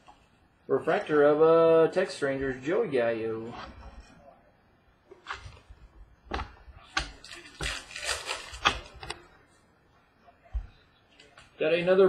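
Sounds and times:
cards and wrappers rustling: 5.1s - 9.2s.

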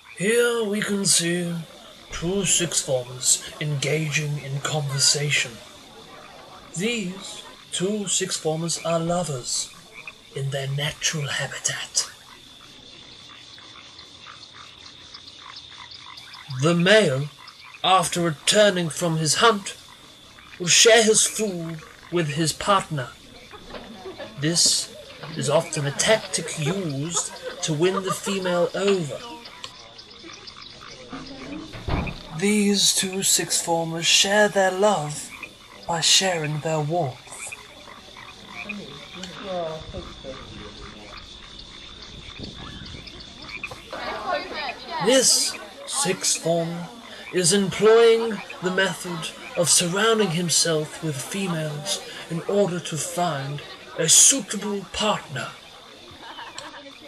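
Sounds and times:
frogs croaking: 0.0s - 57.0s.

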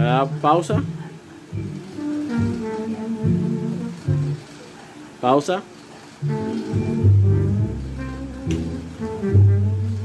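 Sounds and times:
music from stereo speaker: 0.0s - 4.6s, 6.2s - 10.0s.

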